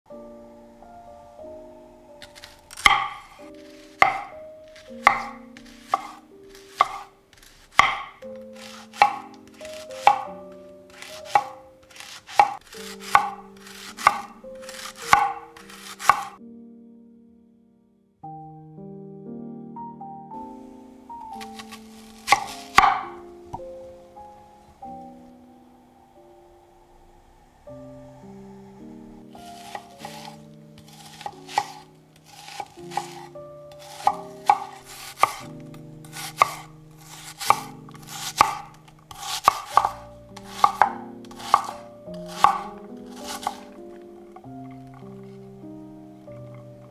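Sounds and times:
knife slicing on chopping board: 2.2s - 10.3s, 10.9s - 16.4s, 21.4s - 23.2s, 29.5s - 35.5s, 36.1s - 43.8s
knife knocking on wooden board: 10.0s - 10.3s.

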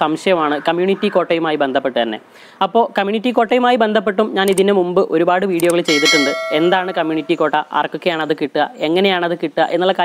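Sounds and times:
bell-like chime: 5.9s - 7.4s.

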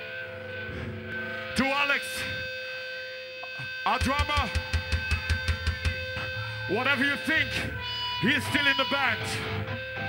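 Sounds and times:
man talking over a pa: 3.9s - 4.6s, 6.7s - 9.4s.

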